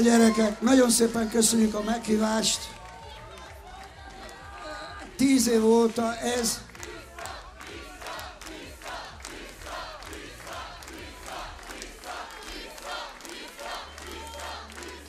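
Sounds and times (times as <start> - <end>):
audience rhythmic clapping: 0.0 - 15.0
crowd shouting and cheering: 0.0 - 15.0.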